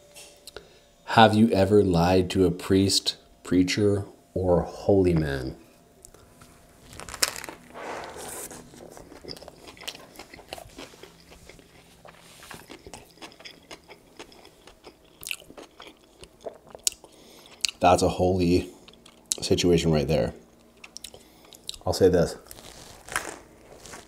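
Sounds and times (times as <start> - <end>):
crunching and chewing: 6.8 - 17.8, 18.7 - 19.5, 20.5 - 24.0
loud bite crunch: 9.0 - 17.8, 22.5 - 24.0.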